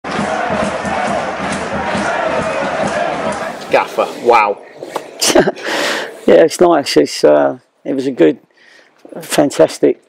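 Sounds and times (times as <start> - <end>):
football crowd chanting: 0.0 - 4.4.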